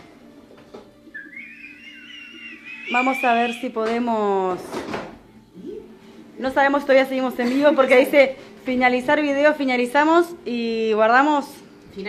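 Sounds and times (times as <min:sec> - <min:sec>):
faint high whistling tone: 0:01.1 - 0:03.8.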